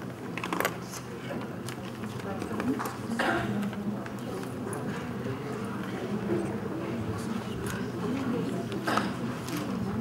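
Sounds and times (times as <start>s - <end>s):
faint murmuring voices: 0.0s - 10.0s.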